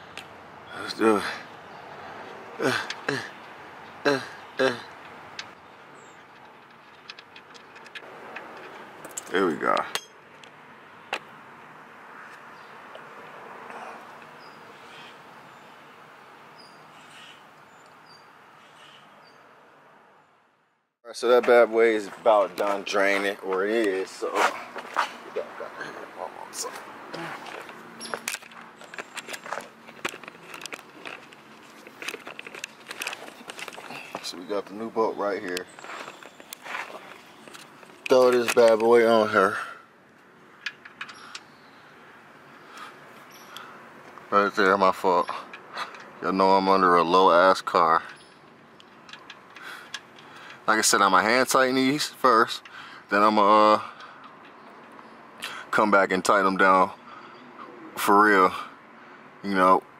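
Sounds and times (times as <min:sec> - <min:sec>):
drain plug clicking and scraping: 0:04.9 - 0:10.5, 0:27.6 - 0:34.2, 0:40.5 - 0:41.5, 0:48.0 - 0:50.7
person shifting on ground: 0:26.6 - 0:34.6, 0:35.4 - 0:39.0
camera handling clicks and scrapes: 0:27.5 - 0:33.9.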